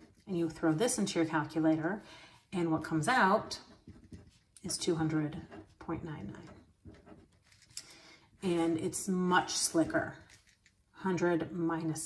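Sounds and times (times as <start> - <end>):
woman speaking: 0.3 - 2.0, 2.6 - 3.7, 4.6 - 6.6, 8.4 - 10.3, 11.0 - 12.0.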